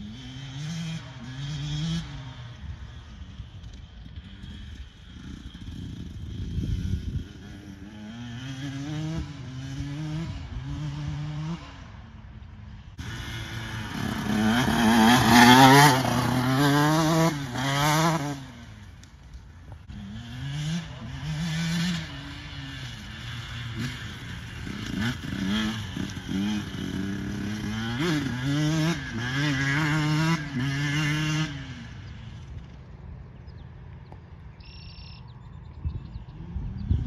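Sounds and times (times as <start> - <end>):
dirt bike accelerating: 0.0 - 37.0.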